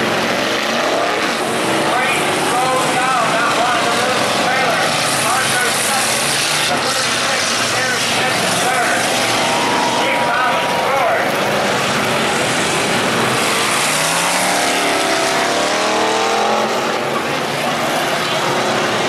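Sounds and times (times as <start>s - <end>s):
racing car engines: 0.0s - 19.0s.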